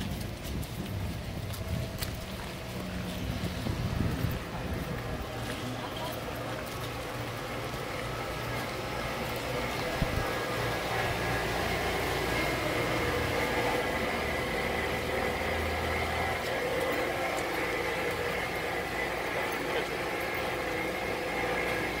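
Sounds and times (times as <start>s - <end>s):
vehicle engine idling: 0.0s - 22.0s
faint background voices: 2.0s - 10.4s.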